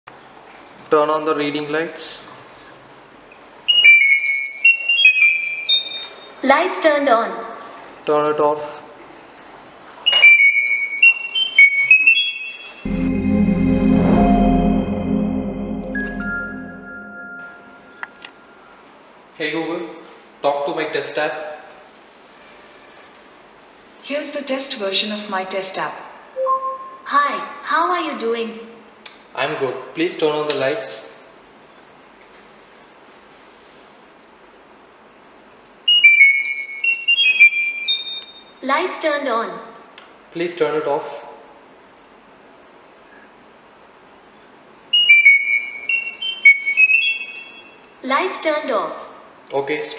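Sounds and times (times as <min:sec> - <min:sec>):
low electronic music: 0:12.9 - 0:18.1
short high beeping tones: 0:12.9 - 0:18.5, 0:26.4 - 0:27.1.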